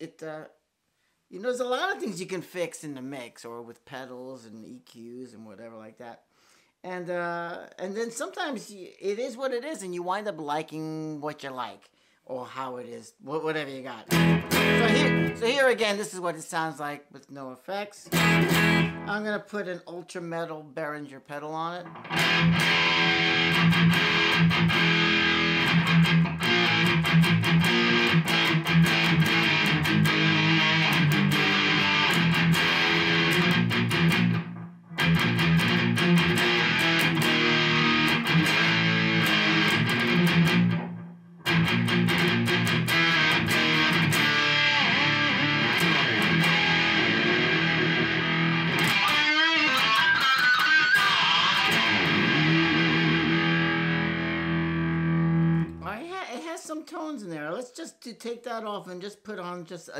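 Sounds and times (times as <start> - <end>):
distorted electric guitar: 14.1 - 15.6, 18.1 - 19.1, 21.8 - 55.9.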